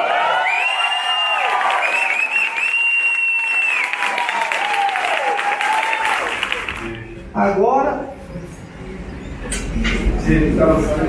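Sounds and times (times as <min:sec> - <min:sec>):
high whooping shout: 0:00.0 - 0:06.7
people applauding: 0:00.0 - 0:07.1
people cheering: 0:00.0 - 0:07.1.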